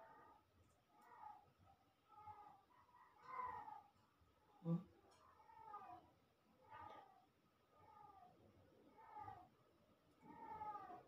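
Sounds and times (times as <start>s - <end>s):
cat meowing faintly: 10.2s - 11.0s.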